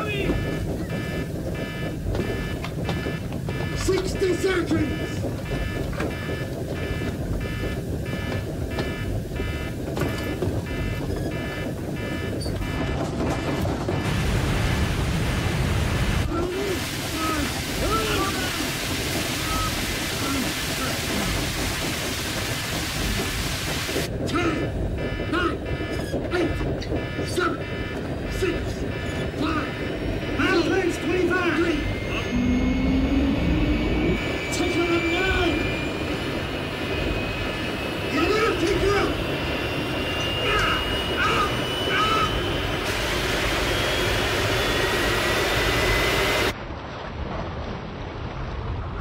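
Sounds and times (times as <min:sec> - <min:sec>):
alarm beeping: 0:00.0 - 0:46.6
spraying water rushing: 0:14.0 - 0:26.6.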